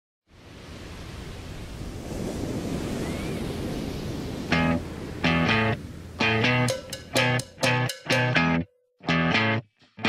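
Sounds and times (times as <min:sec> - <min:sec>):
wind: 0:00.2 - 0:08.6
ocean surf: 0:00.3 - 0:07.9.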